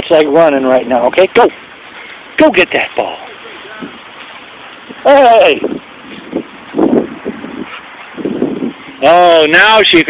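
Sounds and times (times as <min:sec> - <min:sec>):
wind noise on microphone: 0:03.7 - 0:10.0.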